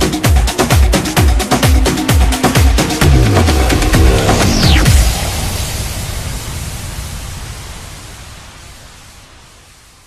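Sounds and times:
synthesized white noise wash: 2.3s - 10.0s.

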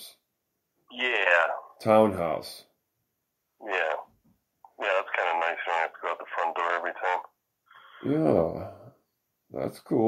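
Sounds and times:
person talking: 3.6s - 7.3s.

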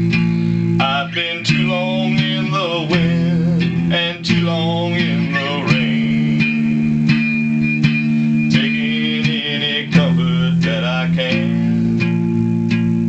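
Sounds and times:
electric guitar ballad chords: 0.0s - 13.0s.

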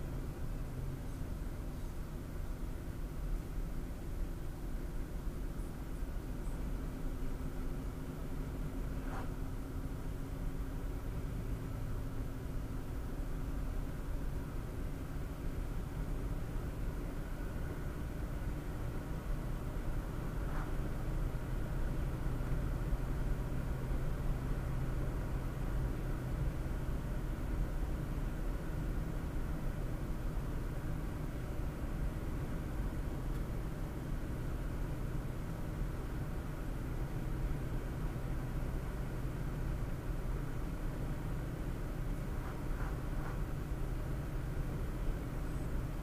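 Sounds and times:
car road and engine noise: 0.0s - 46.0s.

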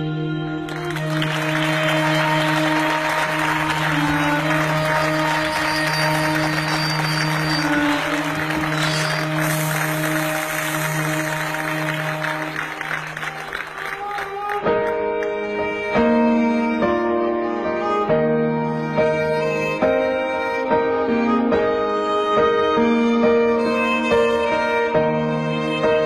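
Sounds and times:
music of long held notes: 0.0s - 26.0s
audience applauding: 0.6s - 15.3s.

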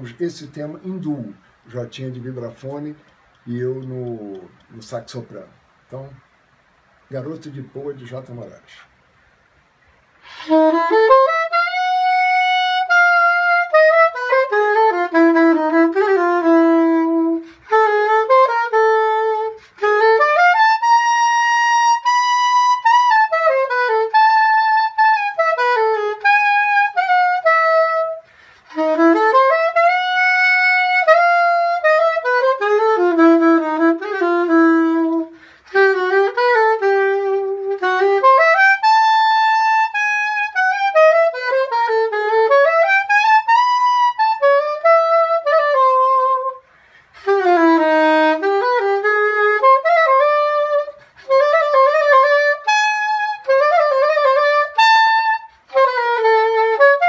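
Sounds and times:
soprano saxophone jazz melody: 10.2s - 57.0s.

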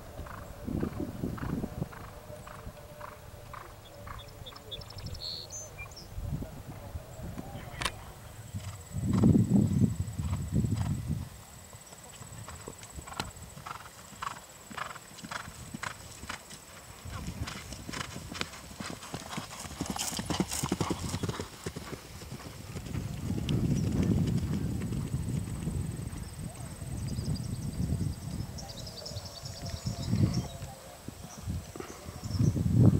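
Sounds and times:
horse hoofbeats galloping on grass: 0.0s - 5.1s, 7.3s - 28.5s.

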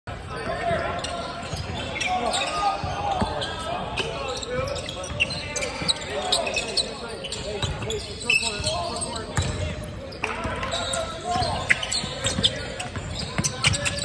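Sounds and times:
sneaker squeaks: 0.2s - 14.0s.

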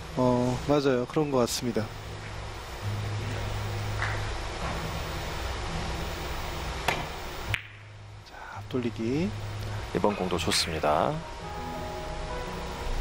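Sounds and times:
low steady hum: 0.0s - 13.0s
cue tip striking ball: 6.8s - 7.9s
ball hitting ball click: 6.9s - 7.8s.

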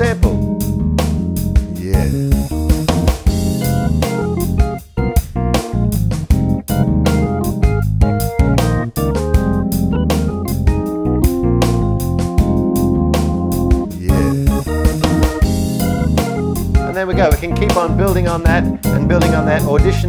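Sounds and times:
keyboard played live: 0.0s - 20.0s
sequenced backing with drum rhythm: 0.0s - 20.0s.

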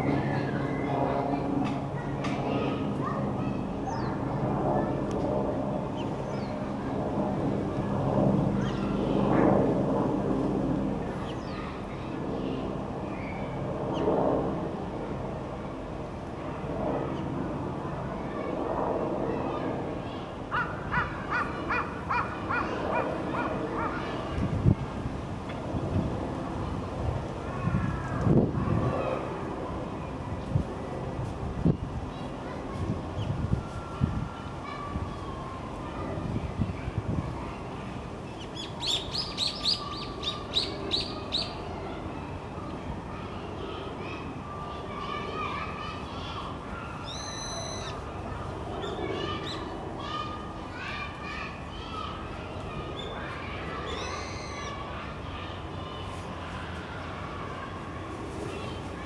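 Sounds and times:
distant traffic rumble: 0.0s - 59.0s.

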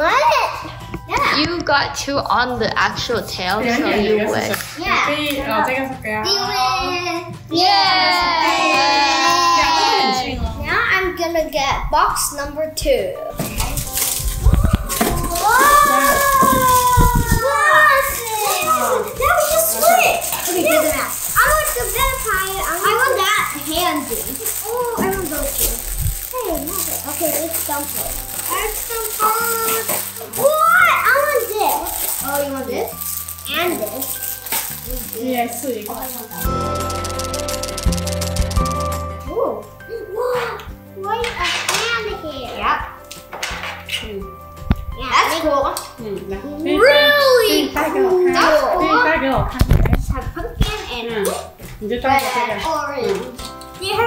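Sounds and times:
background music: 0.0s - 54.0s
plastic bags crinkling: 13.4s - 38.9s
children's voices: 14.4s - 34.2s, 45.0s - 49.6s.

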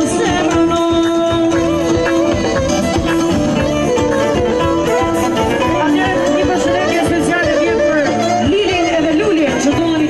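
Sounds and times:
woman singing into microphone: 0.0s - 2.6s, 5.4s - 10.0s
drums: 0.0s - 10.0s
keyboard: 0.0s - 10.0s
violin: 0.0s - 10.0s.

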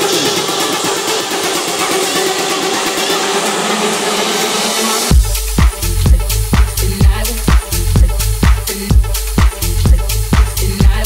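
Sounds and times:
fast high ticking: 0.0s - 11.0s.

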